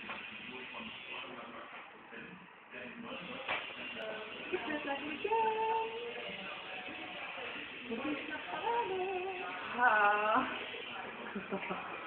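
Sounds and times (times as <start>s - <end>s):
faint indistinct voices: 0.0s - 12.0s
room noise: 0.0s - 12.0s.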